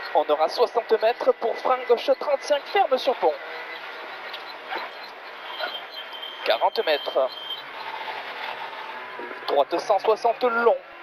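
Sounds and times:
muffled car engine: 0.0 - 11.0
road noise: 0.0 - 11.0.

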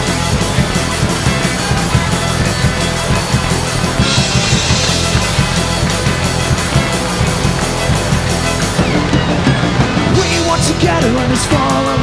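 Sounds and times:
bass guitar: 0.0 - 12.0
drum kit: 0.0 - 12.0
electric guitar: 0.0 - 12.0
violin: 0.0 - 12.0.

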